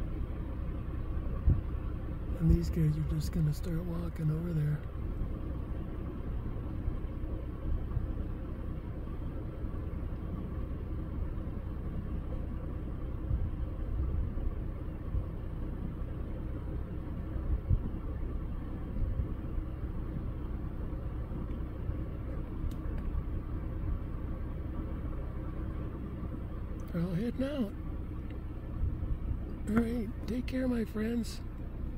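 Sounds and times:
vehicle engine idling: 0.0s - 31.9s
low bumps: 1.2s - 4.2s, 16.7s - 30.6s.

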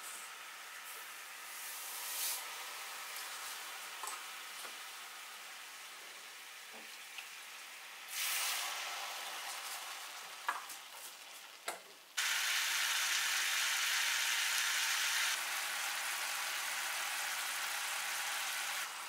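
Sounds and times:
syrup hissing in a frying pan: 1.4s - 11.6s, 12.2s - 19.0s.

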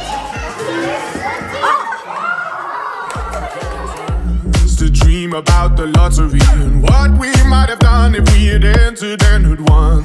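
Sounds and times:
pop music with bass beat: 4.1s - 10.0s.

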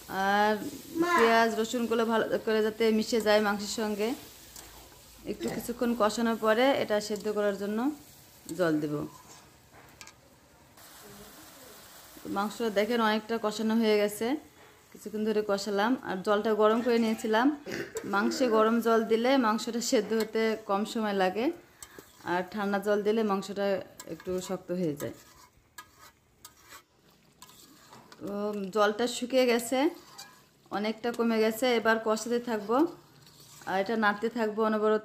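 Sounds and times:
meat sizzling in a pan: 0.0s - 9.7s, 10.7s - 17.3s, 18.0s - 34.2s.

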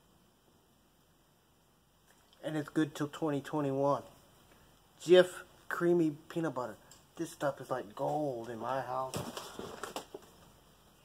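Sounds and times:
paper bag rustling: 9.0s - 10.2s.

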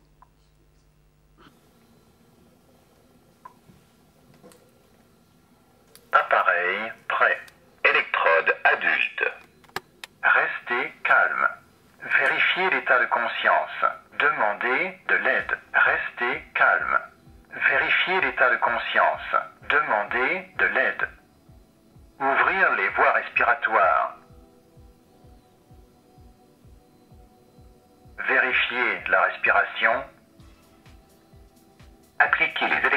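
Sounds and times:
tinny recorded voice prompts: 22.2s - 24.2s, 28.2s - 30.1s, 32.2s - 32.9s.

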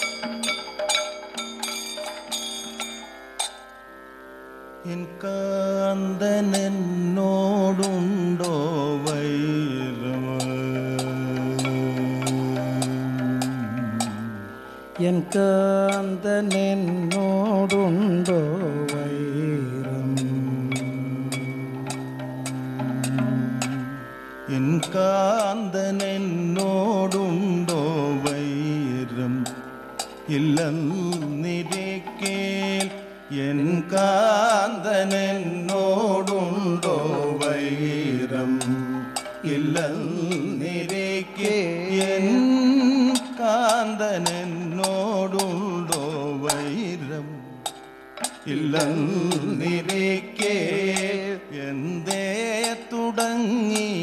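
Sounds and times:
metal cymbal strikes: 0.0s - 3.8s, 20.2s - 23.9s, 29.4s - 33.3s, 38.6s - 46.7s, 47.6s - 51.2s
metallic percussion strikes: 0.0s - 3.8s, 7.7s - 23.9s, 24.8s - 28.5s, 29.4s - 51.4s, 52.0s - 54.0s
person singing long note: 4.9s - 29.5s.

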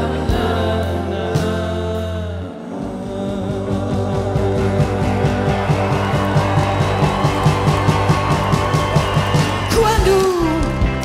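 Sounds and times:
live rock band playing: 3.8s - 11.0s.

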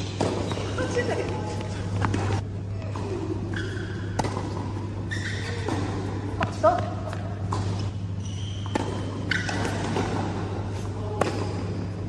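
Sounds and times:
steady low hum: 0.0s - 12.0s
tennis ball struck: 4.1s - 4.8s, 8.6s - 10.4s, 11.2s - 11.8s.

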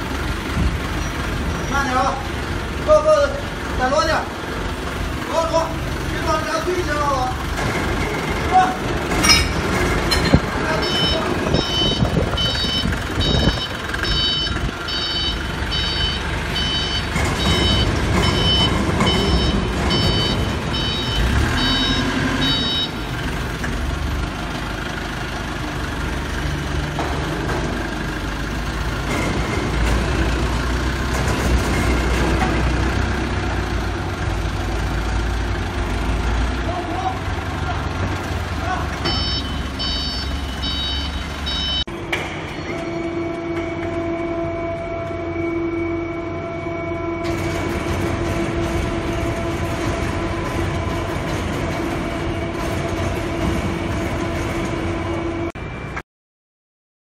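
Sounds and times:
engine running: 0.0s - 56.0s
vehicle reversing alarm beeping: 10.7s - 23.3s, 39.0s - 41.9s.

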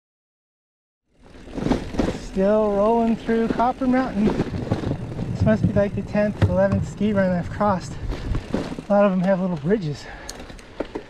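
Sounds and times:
mountain bike rolling on dirt: 1.1s - 11.0s.

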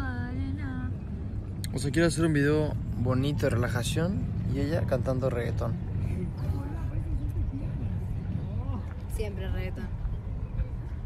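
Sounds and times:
woman singing softly: 0.0s - 1.2s
steady low rumble: 0.0s - 11.0s.

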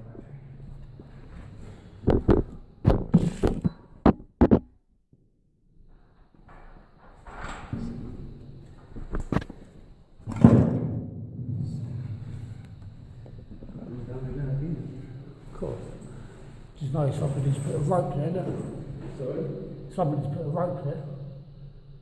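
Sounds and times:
loud thud: 10.3s - 11.9s.

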